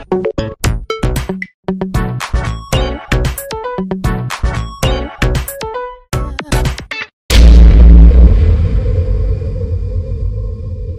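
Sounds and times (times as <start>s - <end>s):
deep rumbling boom: 7.3s - 10.9s.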